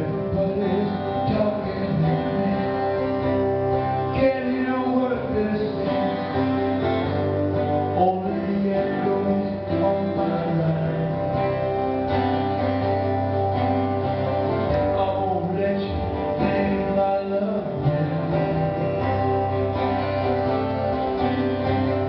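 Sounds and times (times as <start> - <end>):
man singing into microphone: 0.0 - 12.0, 14.7 - 19.7
acoustic guitar strumming: 0.0 - 22.0.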